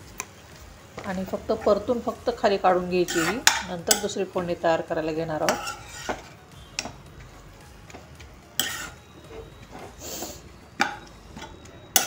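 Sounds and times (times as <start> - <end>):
metal spatula scraping a pan: 3.0 - 4.3, 5.3 - 7.0, 8.6 - 12.0.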